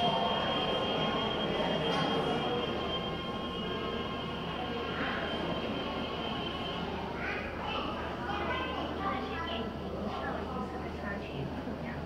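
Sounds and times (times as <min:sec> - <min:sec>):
faint high whine: 0:00.0 - 0:09.7
indoor background noise: 0:00.0 - 0:12.0.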